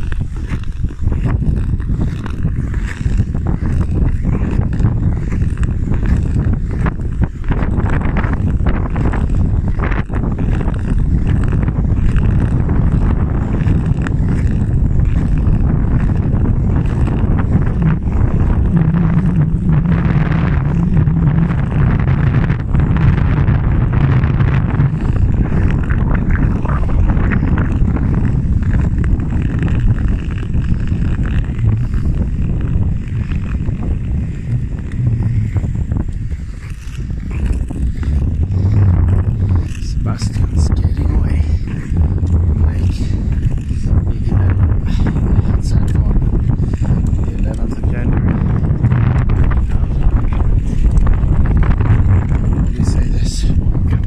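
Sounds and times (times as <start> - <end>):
ice skate blades gliding: 0.0 - 54.0
short scrapes and clicks: 0.0 - 54.0
wind on microphone: 0.0 - 54.0.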